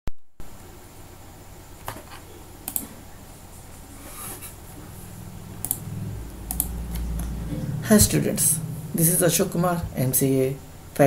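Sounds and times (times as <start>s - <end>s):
faint hum: 0.4s - 11.0s
computer clicks: 2.6s - 2.9s, 5.6s - 5.8s, 6.5s - 6.7s.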